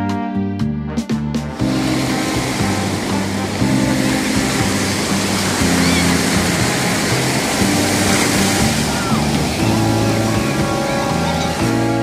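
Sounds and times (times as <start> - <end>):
music with low chords: 0.0 - 12.0
ocean surf washing onto sand: 1.5 - 12.0.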